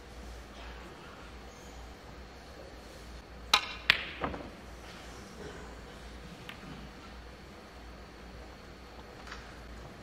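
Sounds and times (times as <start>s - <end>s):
cue striking cue ball: 3.5s - 4.6s
snooker balls clicking: 3.5s - 4.6s.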